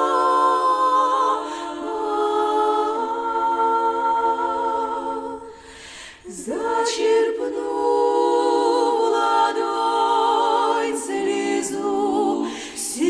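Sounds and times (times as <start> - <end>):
women singing a cappella harmony: 0.0 - 13.0
intake of breath: 5.5 - 6.3, 12.4 - 12.9.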